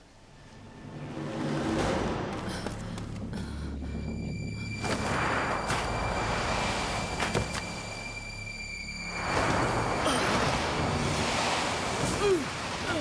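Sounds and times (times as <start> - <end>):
wind-like rushing noise: 8.8 - 13.0.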